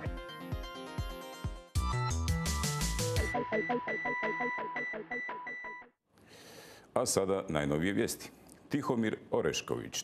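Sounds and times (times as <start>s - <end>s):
electronic music with pulsing beat: 0.0s - 5.9s
faint studio hiss: 6.2s - 10.0s
man speaking: 7.0s - 10.0s.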